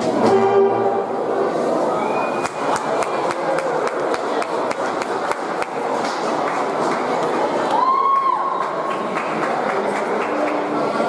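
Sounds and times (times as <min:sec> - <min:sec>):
concert band music: 0:00.0 - 0:01.4.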